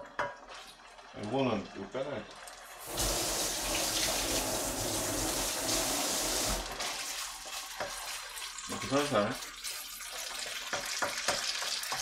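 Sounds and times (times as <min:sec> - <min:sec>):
paste sizzling in hot oil: 0:02.6 - 0:12.0
wooden spatula stirring: 0:07.4 - 0:08.3.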